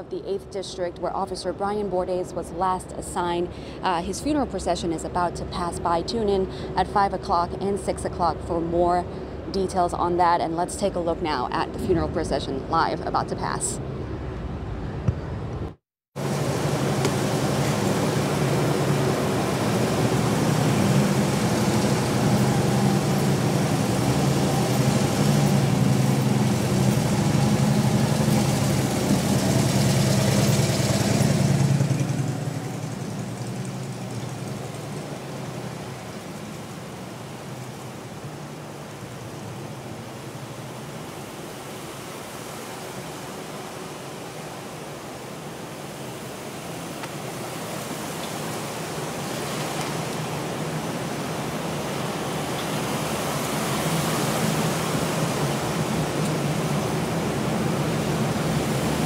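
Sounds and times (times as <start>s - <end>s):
vehicles passing with engines running: 1.7s - 59.0s
steady rushing of passing vehicles: 12.9s - 45.2s, 45.8s - 59.0s.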